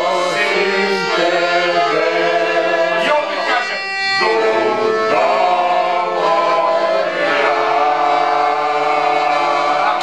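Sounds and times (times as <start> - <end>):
music: 0.0 - 10.0
voices singing together: 0.0 - 10.0.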